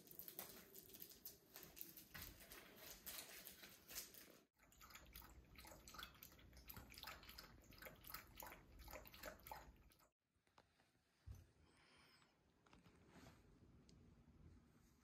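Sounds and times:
dog lapping water: 0:04.6 - 0:10.1.

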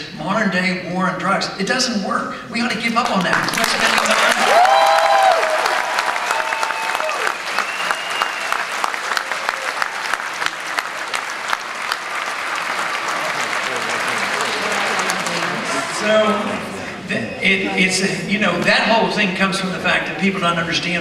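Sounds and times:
audience applauding: 0:03.0 - 0:17.1
crowd cheering: 0:03.4 - 0:17.8.

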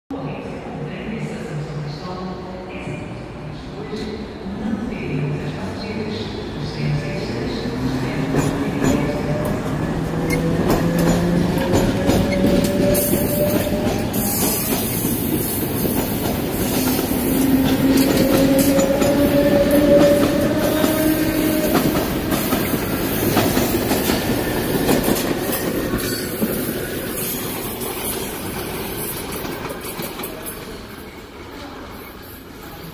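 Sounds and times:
train wheels clacking on rails: 0:08.1 - 0:30.8.

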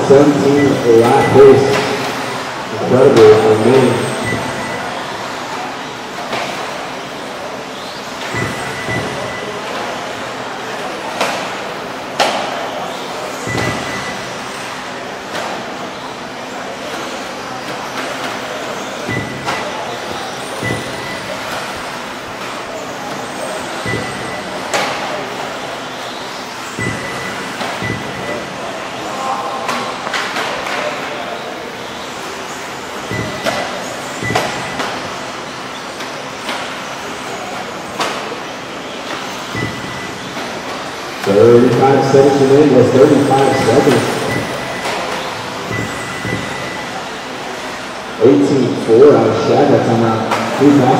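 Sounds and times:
short high beeps: 0:00.4 - 0:01.9, 0:03.9 - 0:05.0, 0:08.3 - 0:09.6, 0:13.5 - 0:14.3, 0:20.6 - 0:21.4, 0:23.8 - 0:24.6, 0:26.8 - 0:28.6, 0:33.1 - 0:34.9, 0:39.5 - 0:40.3, 0:42.3 - 0:47.0.

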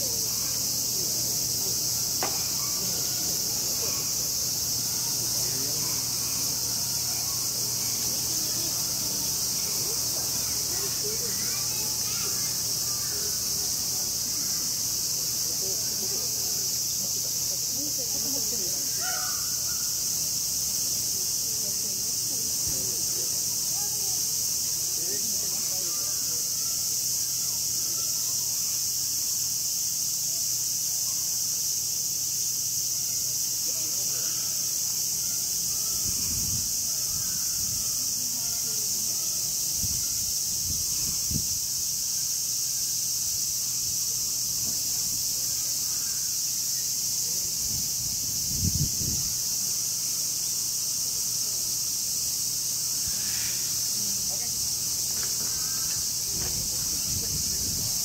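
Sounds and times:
cicadas shrilling: 0:00.0 - 0:58.0.

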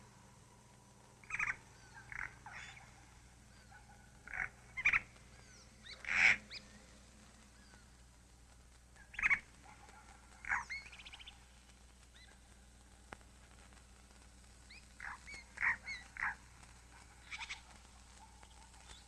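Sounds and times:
short bird calls: 0:01.2 - 0:06.9, 0:09.0 - 0:12.4, 0:14.7 - 0:19.0.

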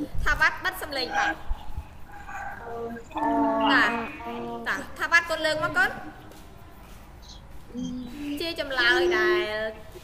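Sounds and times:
person speaking over video call: 0:00.8 - 0:06.0.

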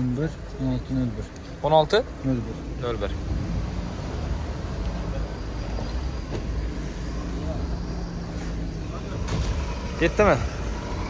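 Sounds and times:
car engine idling: 0:04.3 - 0:11.0.

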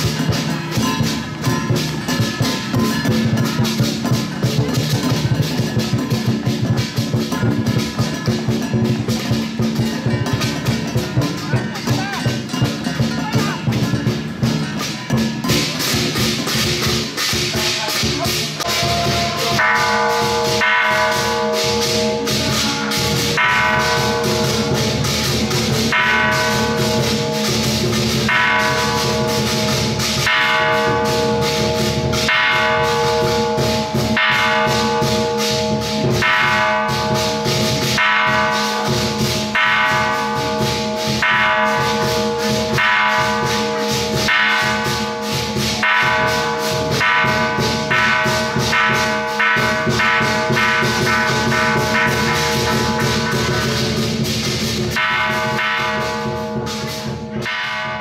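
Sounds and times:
large bell struck ringing: 0:00.0 - 0:58.0.

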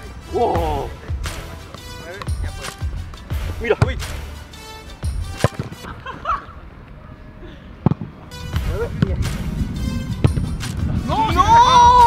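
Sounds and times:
background music: 0:00.0 - 0:06.7, 0:08.2 - 0:12.0.

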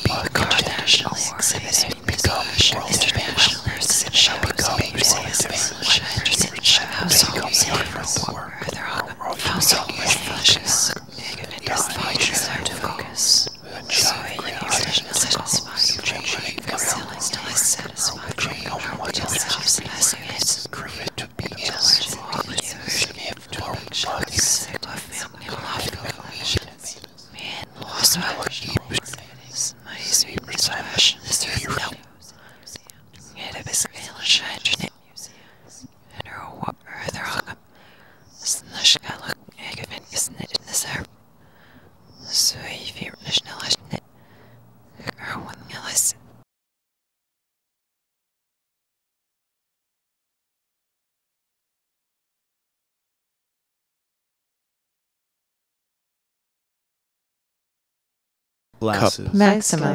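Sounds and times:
whispered voices: 0:00.0 - 0:37.6, 0:38.4 - 0:41.1, 0:42.2 - 0:44.0, 0:45.0 - 0:46.2, 0:58.8 - 0:59.9.

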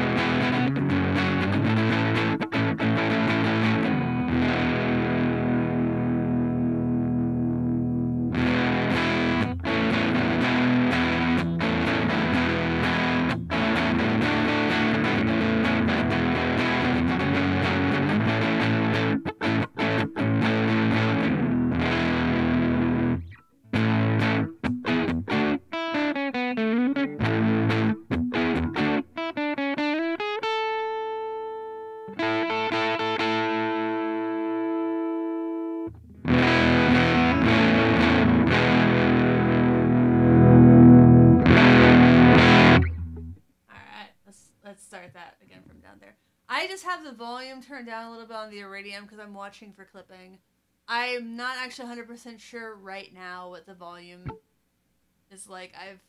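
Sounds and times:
distorted electric guitar: 0:00.0 - 0:43.4.

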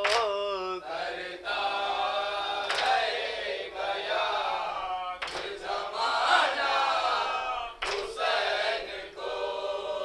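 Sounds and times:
men chanting in unison: 0:00.0 - 0:10.0.

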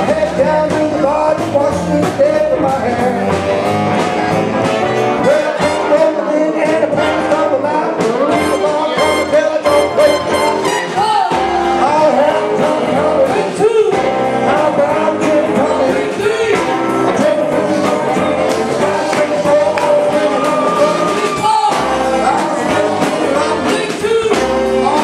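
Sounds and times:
horn section: 0:00.0 - 0:25.0
live band playing: 0:00.0 - 0:25.0
person singing: 0:00.0 - 0:25.0.

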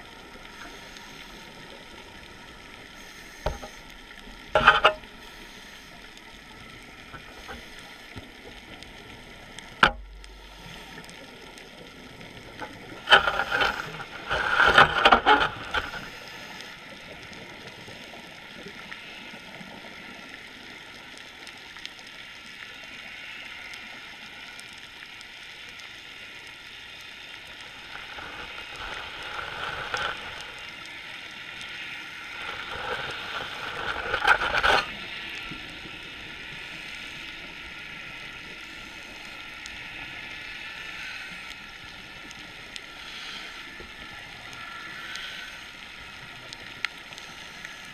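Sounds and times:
underwater hiss: 0:00.0 - 0:14.6, 0:15.5 - 0:20.4, 0:27.5 - 0:47.9
faint steady tones: 0:00.0 - 0:47.9.

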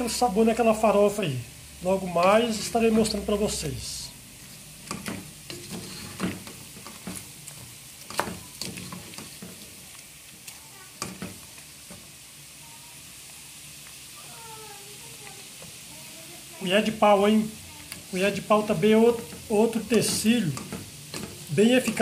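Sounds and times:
pork fat sizzling in pot: 0:00.0 - 0:22.0.

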